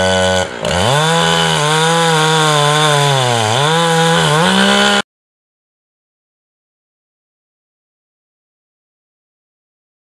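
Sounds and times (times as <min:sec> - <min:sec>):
chainsaw cutting wood: 0:00.0 - 0:05.1.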